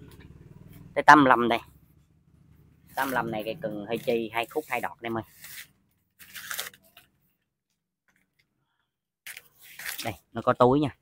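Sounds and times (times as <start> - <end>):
plastic sleeve crinkling: 4.4 - 7.2, 9.3 - 10.2.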